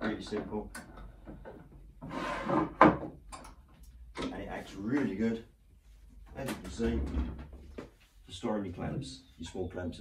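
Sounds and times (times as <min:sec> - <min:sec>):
wooden board scraping on bench: 0:02.0 - 0:03.0.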